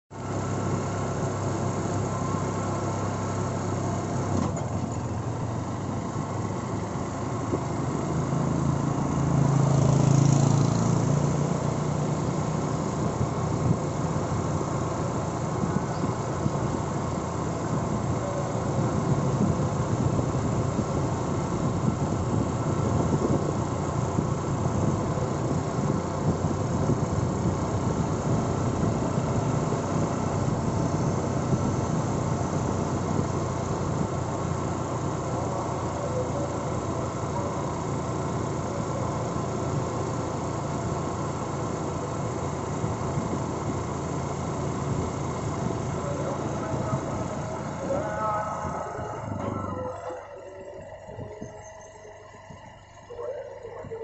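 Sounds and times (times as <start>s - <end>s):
vehicle engine and road noise: 0.0s - 54.0s.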